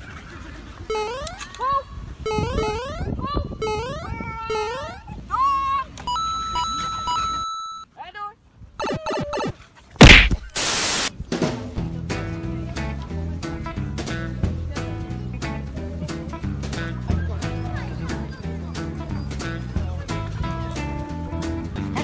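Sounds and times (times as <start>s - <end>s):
loud hit: 10.0s - 10.8s
burst of hiss: 10.0s - 11.1s
music: 11.3s - 22.0s.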